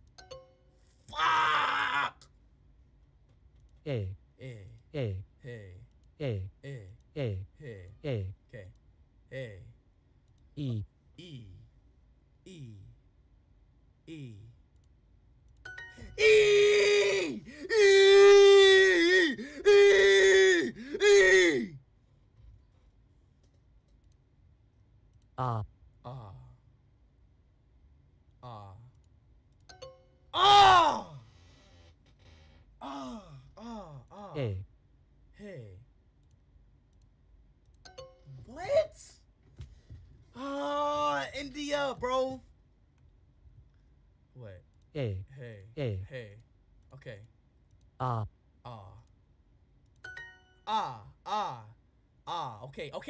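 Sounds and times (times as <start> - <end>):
man wailing in frustration: 1.1 - 2.2, 16.0 - 21.8, 30.4 - 31.2, 32.8 - 34.0, 40.4 - 42.2
computer mouse clicks: 23.4 - 24.3.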